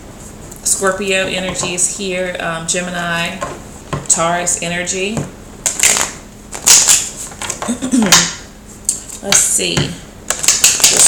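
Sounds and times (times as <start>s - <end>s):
person coughing: 7.6s - 8.2s.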